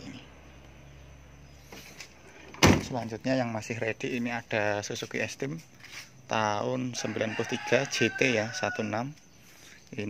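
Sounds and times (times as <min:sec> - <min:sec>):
car door slamming: 0:02.5 - 0:03.0.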